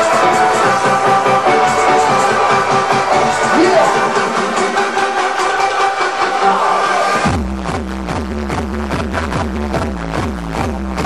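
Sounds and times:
held synth chords: 0:00.0 - 0:07.3.

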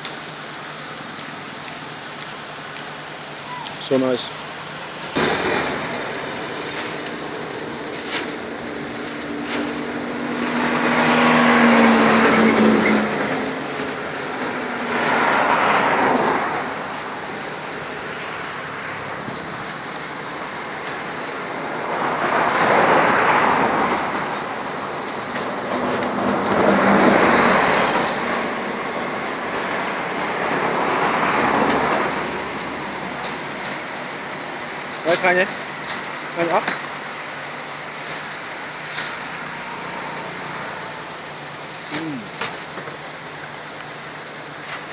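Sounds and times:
low engine hum: 0:00.0 - 0:44.9
vehicles passing: 0:00.0 - 0:44.9.

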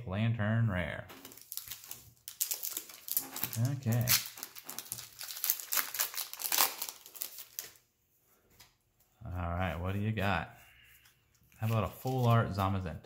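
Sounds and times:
foil wrapper crinkling: 0:01.2 - 0:07.8.

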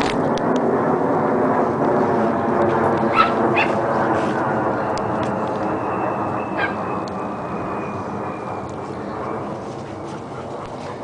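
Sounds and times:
steady background noise: 0:00.0 - 0:11.0
dogs yipping: 0:03.0 - 0:03.8, 0:06.5 - 0:06.8.

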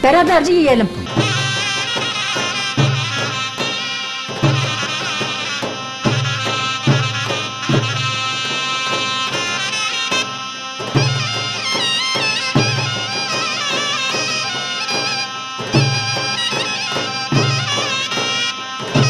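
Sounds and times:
heavy bass drum strokes: 0:00.8 - 0:03.3
shrill reed wind instrument: 0:00.9 - 0:19.0.

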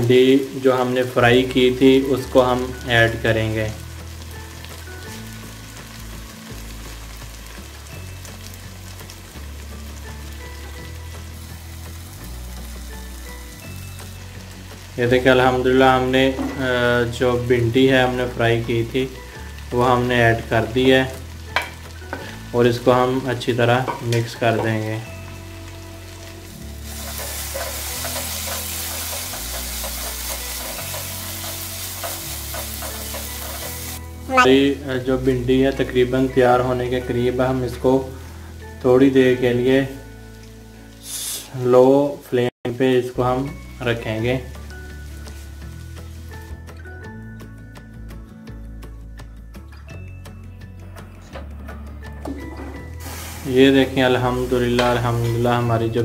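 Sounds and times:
background music with bass line: 0:00.0 - 0:41.2, 0:43.1 - 0:56.0
food sizzling in oil: 0:00.0 - 0:41.6, 0:43.0 - 0:47.9, 0:52.4 - 0:56.0
wooden spatula stirring: 0:26.9 - 0:34.0.

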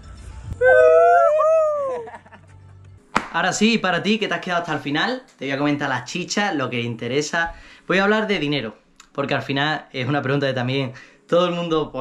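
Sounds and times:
men howling: 0:00.6 - 0:02.3.

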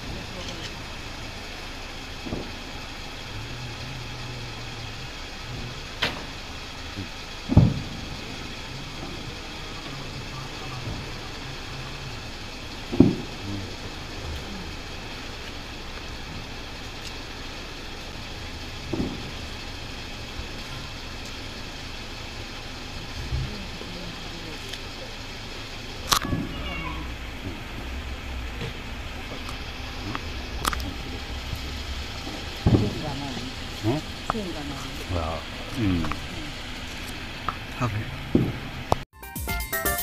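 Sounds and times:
distant fireworks booming: 0:00.0 - 0:38.9.

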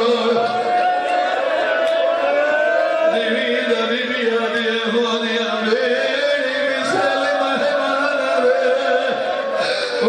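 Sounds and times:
man chanting into a microphone: 0:00.0 - 0:00.6, 0:03.0 - 0:10.0.

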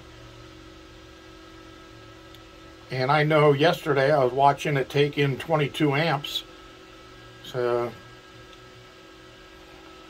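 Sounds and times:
faint steady hum: 0:00.0 - 0:10.0
thin steady tones: 0:02.9 - 0:08.1.

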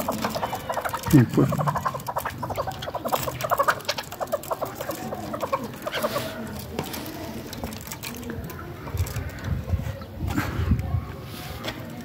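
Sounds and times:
partridge calling: 0:00.0 - 0:06.5.

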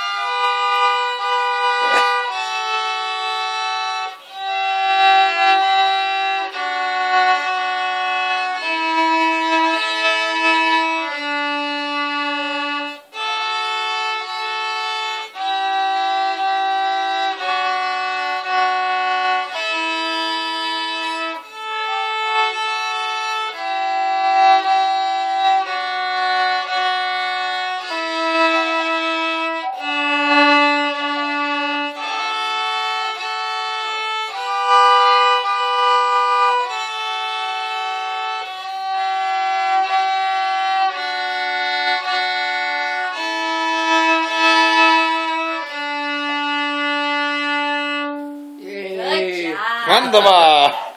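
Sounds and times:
two violins playing a slow duet: 0:00.0 - 0:49.3.

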